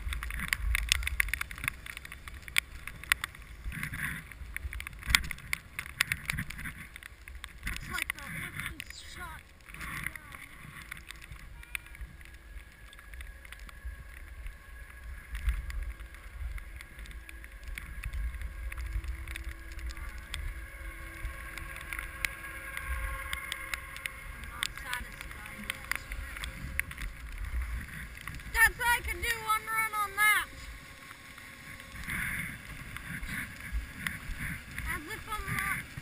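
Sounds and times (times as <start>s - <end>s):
skis sliding over snow: 0.0s - 36.0s
small clicks: 0.0s - 36.0s.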